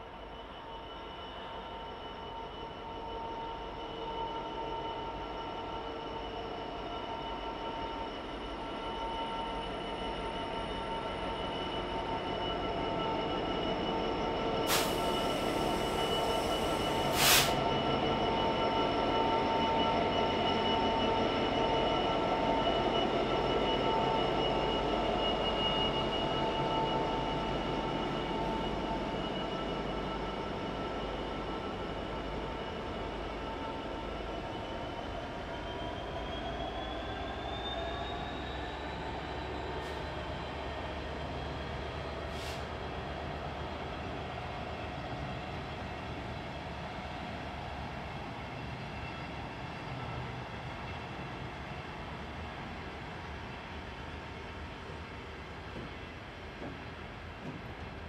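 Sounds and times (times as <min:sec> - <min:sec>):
rumble of train running gear: 0:00.0 - 0:58.0
train wheels squealing: 0:00.0 - 0:58.0.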